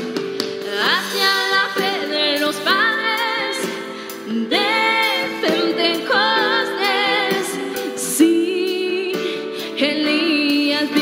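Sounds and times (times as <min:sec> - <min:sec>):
woman singing with vibrato: 0:00.7 - 0:11.0.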